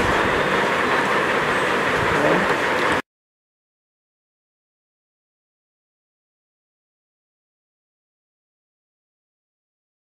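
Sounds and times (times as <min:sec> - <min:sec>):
steady rushing noise: 0:00.0 - 0:03.0.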